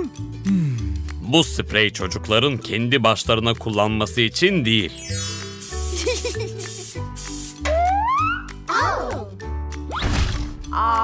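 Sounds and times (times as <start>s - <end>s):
aerosol spray can hissing: 5.3s - 7.7s
sound rising in pitch: 7.7s - 8.6s.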